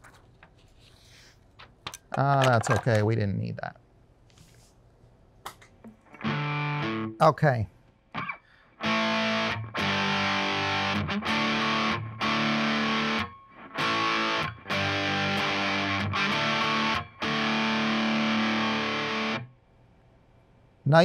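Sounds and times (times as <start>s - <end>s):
overdriven electric guitar chords: 5.9s - 7.2s, 8.1s - 19.5s.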